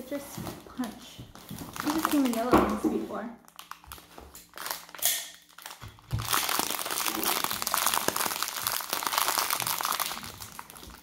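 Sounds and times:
plastic candy wrapper crinkling: 0:00.4 - 0:11.0.

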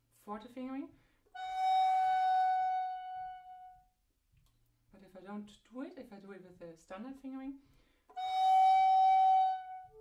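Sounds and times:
recorder playing long high note: 0:01.4 - 0:03.8, 0:08.1 - 0:10.0.

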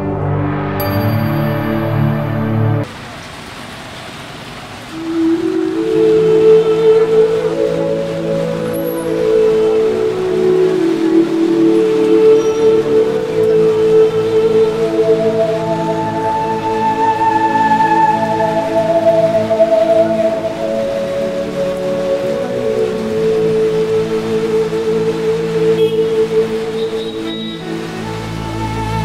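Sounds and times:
short musical sting: 0:00.0 - 0:02.8
slow ambient music: 0:00.0 - 0:02.9, 0:04.9 - 0:29.0
steady rain falling: 0:00.0 - 0:29.0.

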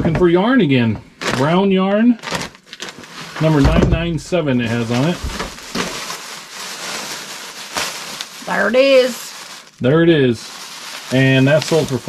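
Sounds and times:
plastic bag rustling and crinkling: 0:02.2 - 0:12.0.

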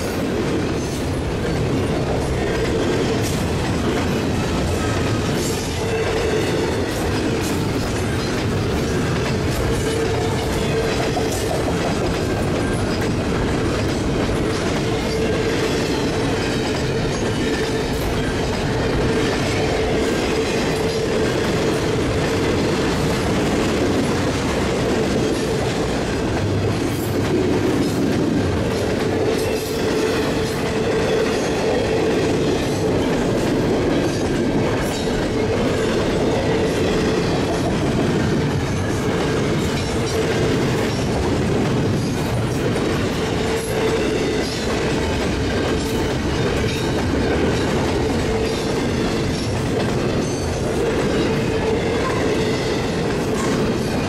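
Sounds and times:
train wheels rumbling on rails: 0:00.0 - 0:54.0
ringing tone from wheels and rails: 0:04.7 - 0:21.3, 0:45.7 - 0:54.0.

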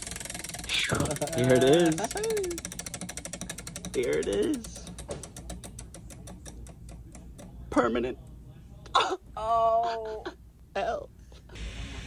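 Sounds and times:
prize wheel ticking: 0:00.0 - 0:08.2.

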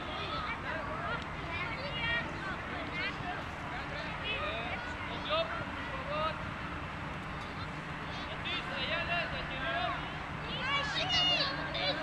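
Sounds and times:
children calling and shouting: 0:00.0 - 0:12.0.

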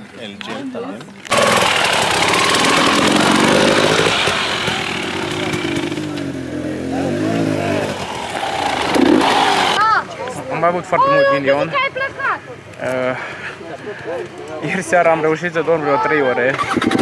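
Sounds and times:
people's voices: 0:00.0 - 0:17.0
dirt bike engine revving: 0:01.3 - 0:09.8.

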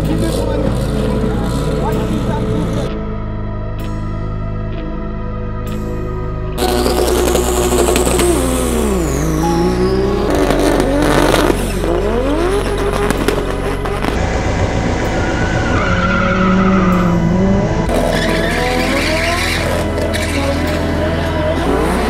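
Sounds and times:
drag car engines revving: 0:00.0 - 0:03.0, 0:06.6 - 0:22.0
background music: 0:00.0 - 0:22.0
tire squeal: 0:06.6 - 0:22.0.

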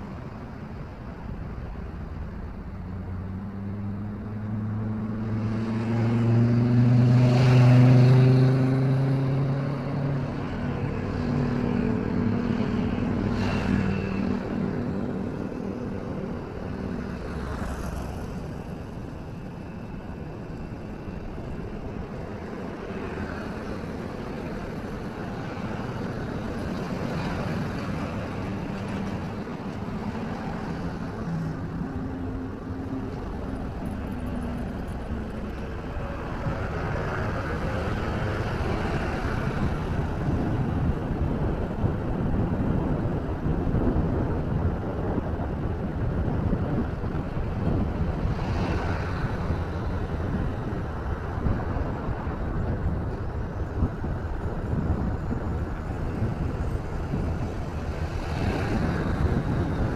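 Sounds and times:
traffic noise: 0:00.0 - 0:59.9
vehicle engine passing close: 0:03.0 - 0:19.9.

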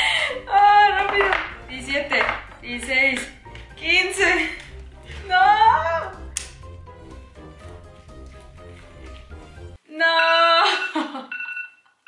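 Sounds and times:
timer alarm beeping: 0:10.2 - 0:11.9.

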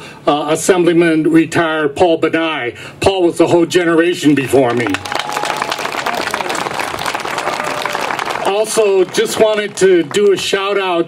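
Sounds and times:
audience applauding: 0:04.6 - 0:11.0.

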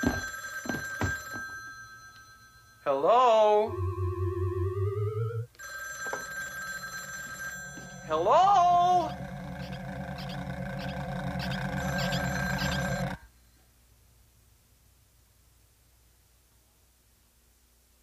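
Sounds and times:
trilling electronic ringing tones: 0:03.6 - 0:13.2
rising wavering synth sweep: 0:03.7 - 0:05.5.

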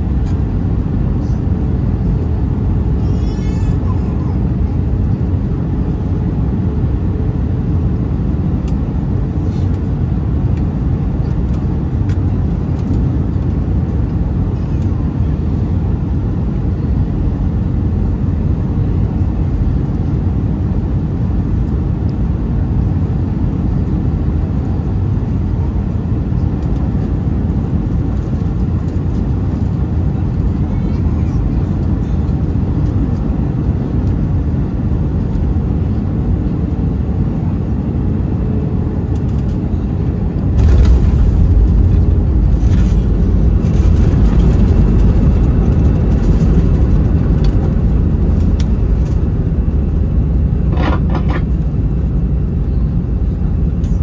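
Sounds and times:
aircraft engines rumbling: 0:00.0 - 0:54.0
rushing air: 0:40.4 - 0:47.0.

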